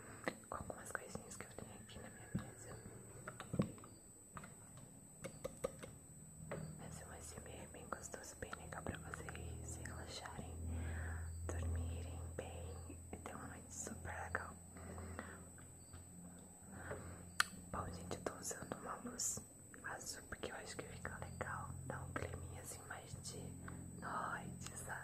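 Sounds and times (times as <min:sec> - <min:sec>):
woman whispering: 0:00.3 - 0:03.1, 0:06.8 - 0:15.4, 0:17.7 - 0:25.0
small sharp clicks: 0:03.3 - 0:06.6, 0:17.4 - 0:17.6.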